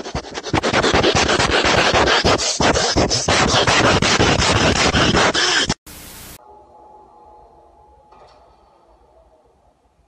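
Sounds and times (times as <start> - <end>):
cat rubbing against microphone: 0.0 - 5.8.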